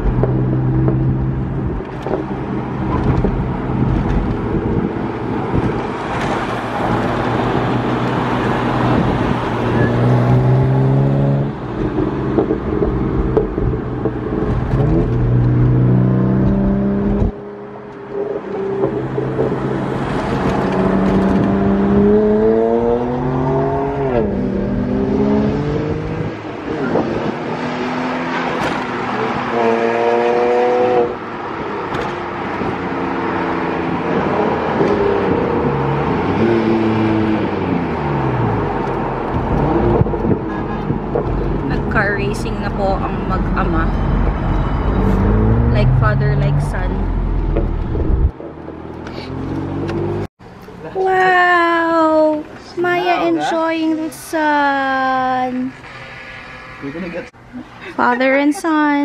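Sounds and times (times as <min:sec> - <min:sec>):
car engine accelerating: 0:00.0 - 0:31.2, 0:31.9 - 0:50.3
road noise: 0:00.0 - 0:59.0.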